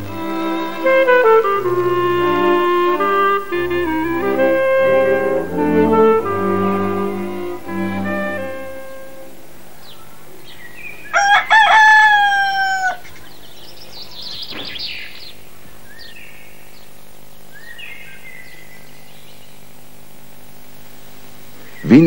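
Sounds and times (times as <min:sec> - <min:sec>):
rooster crowing: 0:11.0 - 0:13.1.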